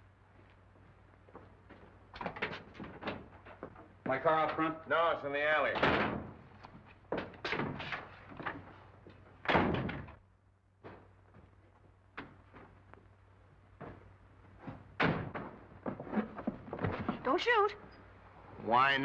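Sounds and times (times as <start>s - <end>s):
knocks and footsteps: 0.0s - 4.9s, 5.6s - 10.2s, 10.8s - 18.4s
faint footsteps and clicks: 0.3s - 4.7s, 10.8s - 14.9s
door shutting with heavy thud: 5.8s - 6.4s, 9.4s - 10.2s, 15.0s - 15.6s
low steady hum: 8.3s - 19.0s.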